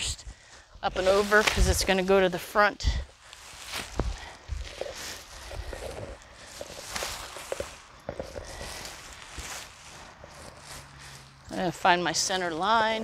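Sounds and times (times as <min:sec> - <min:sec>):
nylon tent fly rustling: 0:03.1 - 0:11.5.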